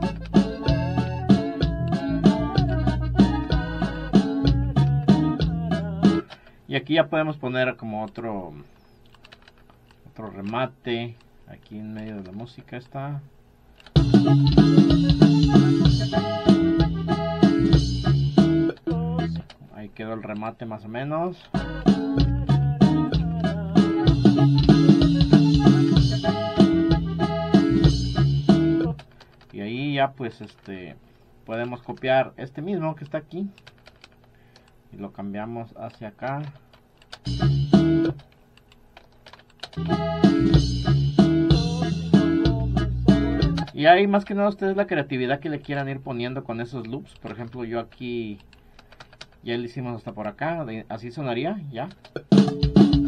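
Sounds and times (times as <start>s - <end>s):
norteno music with drum loops: 0.0s - 6.4s, 13.8s - 19.6s, 21.4s - 29.1s, 37.1s - 38.4s, 39.6s - 44.8s, 51.8s - 53.0s
keyboard or mouse clicks: 8.8s - 10.6s, 13.8s - 16.6s, 33.0s - 34.8s, 35.8s - 40.6s, 43.1s - 44.4s, 46.8s - 49.4s.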